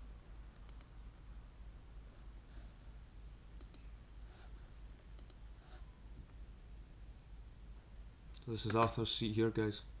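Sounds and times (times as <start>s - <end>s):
low steady hum: 0.0s - 10.0s
computer mouse clicks: 0.6s - 0.9s, 3.6s - 3.9s, 5.0s - 5.4s.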